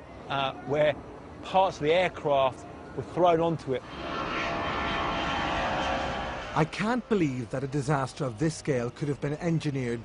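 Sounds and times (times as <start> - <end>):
airplane flying overhead: 3.5 - 9.4.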